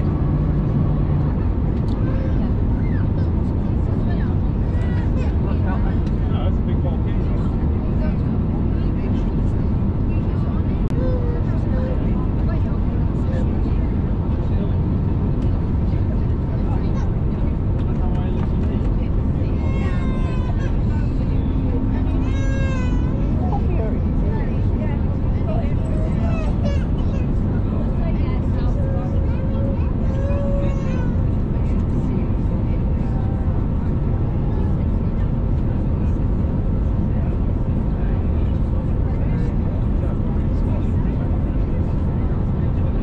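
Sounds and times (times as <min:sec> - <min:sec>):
airplane cabin engine noise: 0:00.0 - 0:43.0.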